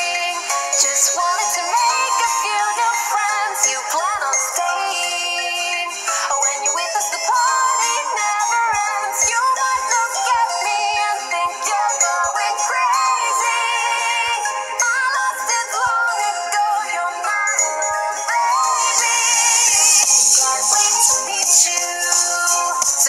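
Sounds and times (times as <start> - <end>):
instrumental backing: 0.0 - 23.0
synthetic sung vocal: 0.0 - 23.0.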